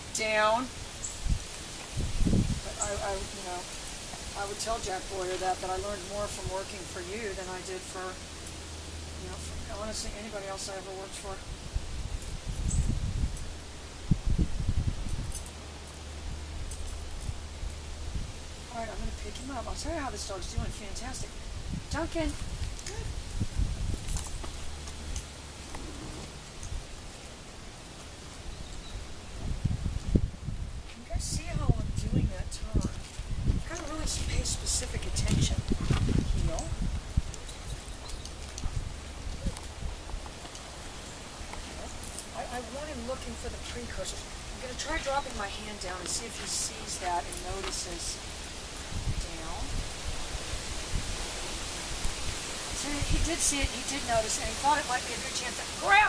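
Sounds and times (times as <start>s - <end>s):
outdoor rustling hiss: 0.0s - 56.0s
footsteps on sandy path: 35.0s - 42.3s.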